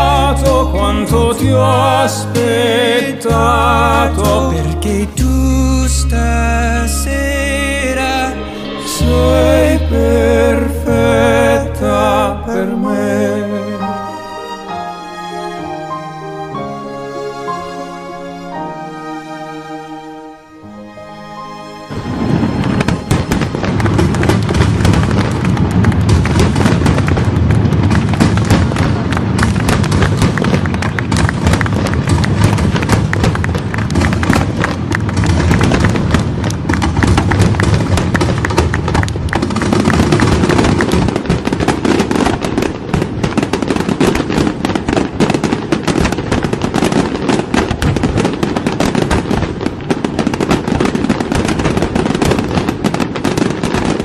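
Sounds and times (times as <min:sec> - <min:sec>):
fireworks crackling and popping: 0:00.0 - 0:06.0, 0:06.9 - 0:12.0, 0:21.9 - 0:54.0
low rumble: 0:00.0 - 0:13.8, 0:21.9 - 0:32.4.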